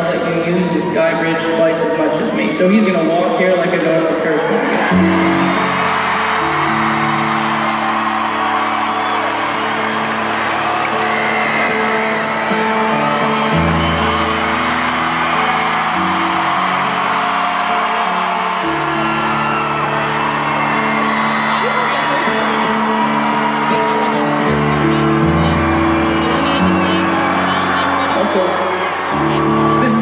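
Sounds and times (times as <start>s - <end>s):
crowd cheering and whooping: 0.0s - 3.1s, 3.8s - 30.0s
stage piano chords: 0.0s - 30.0s.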